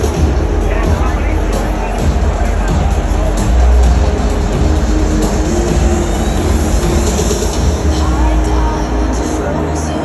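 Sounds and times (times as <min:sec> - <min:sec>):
large crowd noise: 0:00.0 - 0:10.0
music over public address system: 0:00.0 - 0:10.0.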